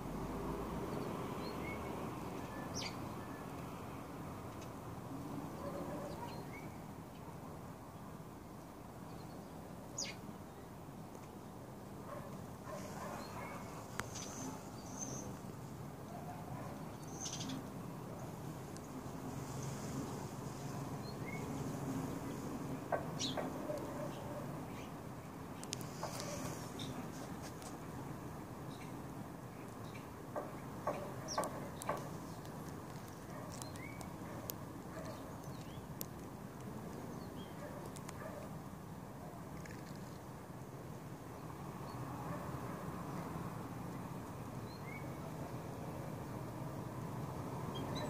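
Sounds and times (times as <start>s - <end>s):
faint high bird chirps: 17.0s - 17.6s.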